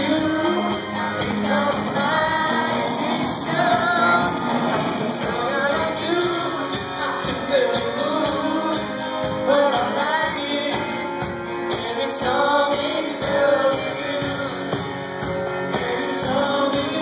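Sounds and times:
acoustic guitar: 0:00.0 - 0:17.0
man singing: 0:00.0 - 0:17.0
steady drum beat: 0:00.0 - 0:17.0.

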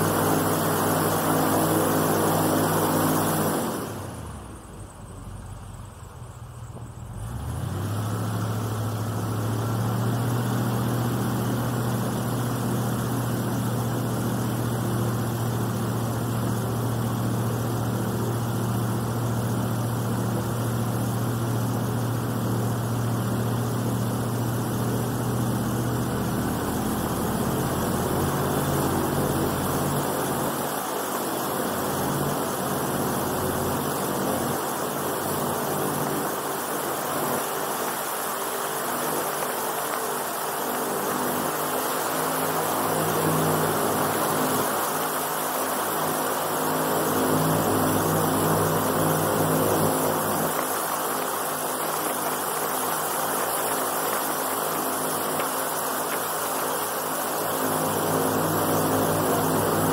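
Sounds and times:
airboat engine drone: 0:00.0 - 0:59.9.

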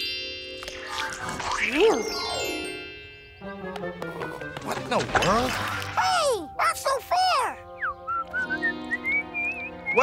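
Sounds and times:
man whistling a tune: 0:07.8 - 0:10.0.

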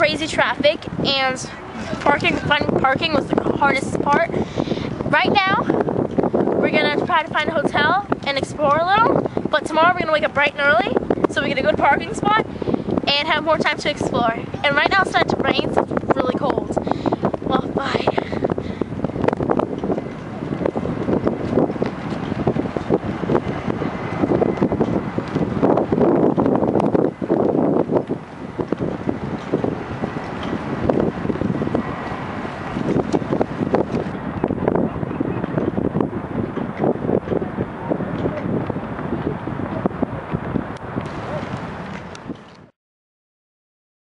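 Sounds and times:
wind buffeting microphone: 0:00.0 - 0:42.7.

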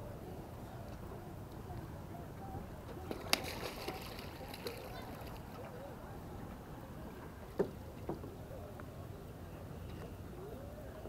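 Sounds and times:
low outdoor background: 0:00.0 - 0:11.0.

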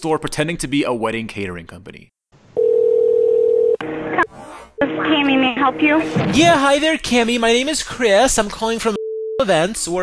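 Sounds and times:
telephone ringback tone: 0:02.6 - 0:03.8.

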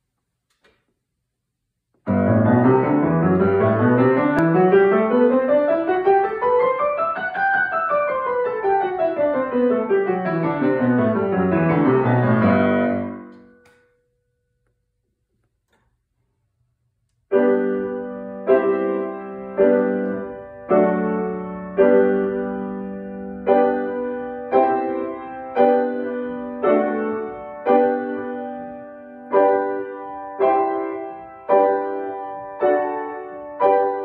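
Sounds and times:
piano scale run: 0:02.0 - 0:14.3, 0:17.3 - 0:34.0
piano chords ringing: 0:02.1 - 0:14.5, 0:17.3 - 0:34.0.

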